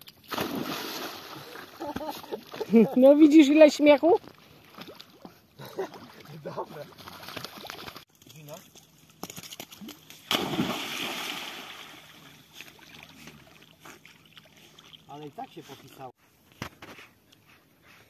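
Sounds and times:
dog splashing into water: 0.2s - 1.6s, 5.9s - 8.1s, 9.4s - 13.6s
water churning: 10.3s - 15.2s.

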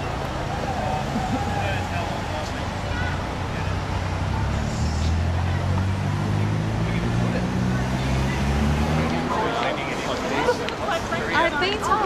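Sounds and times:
people talking: 0.0s - 12.0s
street noise: 0.0s - 12.0s
vehicle engine humming: 0.0s - 12.0s.

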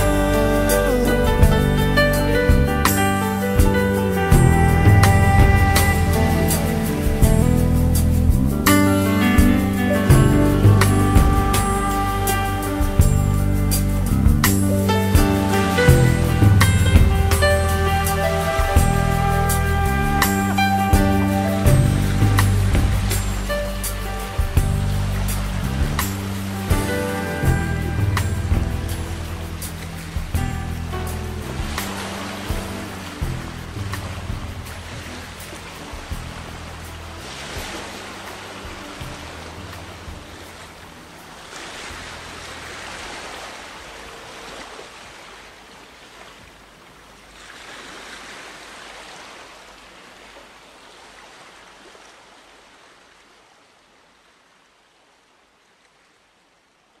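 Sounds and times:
pop song bass and beat: 0.0s - 29.6s
rushing surf-like noise: 0.0s - 55.6s.

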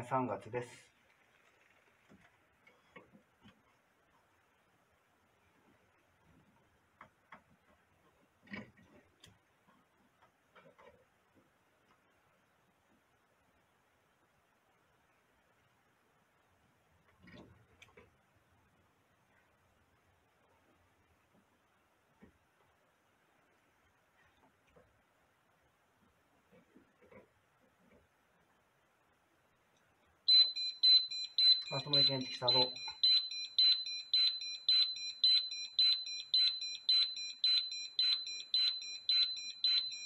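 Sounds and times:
soft rustle: 0.8s - 4.7s
gas detector alarm beeping: 30.3s - 40.0s.

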